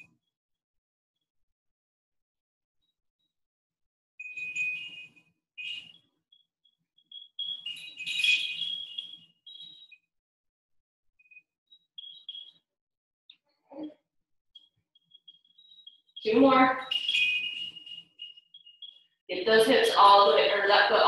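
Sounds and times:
electronic beeps: 7.2 - 10.0, 12.0 - 12.6, 14.6 - 21.0
tinkling electronic jingle: 7.5 - 9.9, 16.2 - 18.4.

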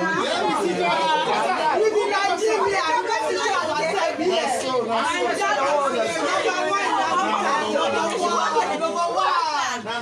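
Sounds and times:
overlapping conversation: 0.0 - 10.0.

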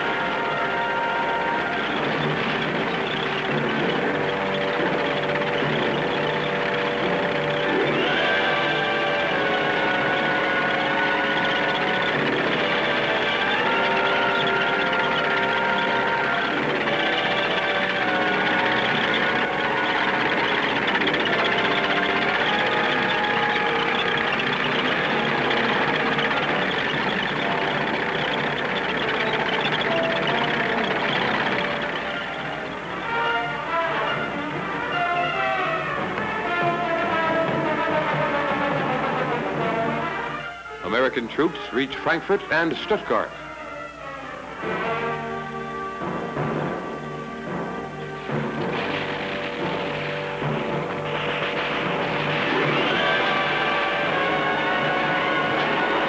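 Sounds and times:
music of held chords: 0.0 - 56.0.

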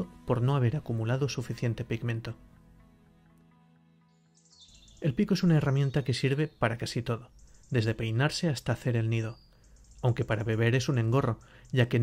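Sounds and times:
faint background music: 0.0 - 12.0
high bird chirping: 4.0 - 12.0.

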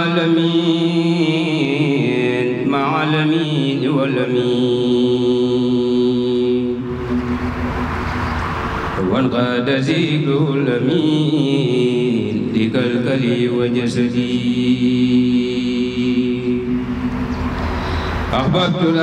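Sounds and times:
man chanting into a microphone: 0.0 - 6.9, 9.0 - 16.8, 18.3 - 19.0
noisy rush: 4.3 - 11.1, 11.9 - 19.0.

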